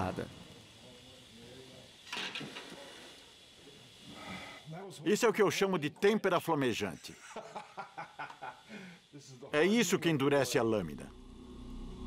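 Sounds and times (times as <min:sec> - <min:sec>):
hot steel hissing in water: 0:00.0 - 0:12.0.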